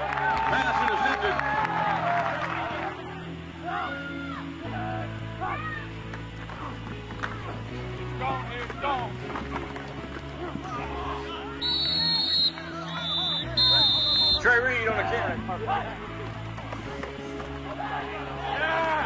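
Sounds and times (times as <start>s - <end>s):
referee's whistle blowing: 11.6s - 14.6s.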